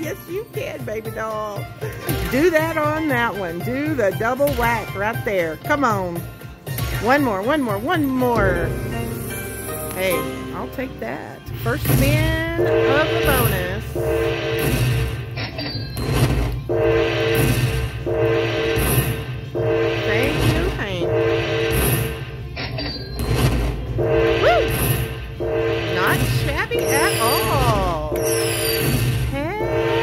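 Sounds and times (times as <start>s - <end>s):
slot machine jingle: 0.0s - 30.0s.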